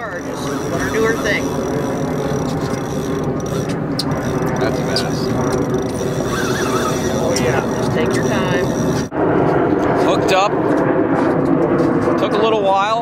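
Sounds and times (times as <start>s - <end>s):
outboard motor running: 0.0s - 9.1s.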